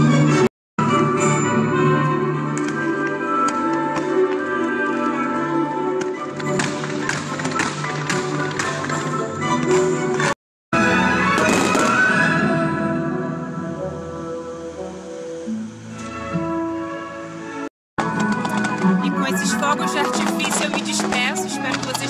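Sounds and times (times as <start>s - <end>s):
music with long held notes: 0.0s - 22.0s
fireworks cracking and popping: 11.3s - 12.2s, 18.0s - 22.0s.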